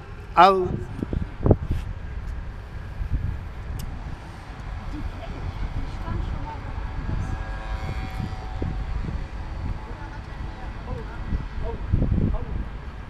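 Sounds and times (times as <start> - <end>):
distant engines rumbling: 0.0 - 13.0.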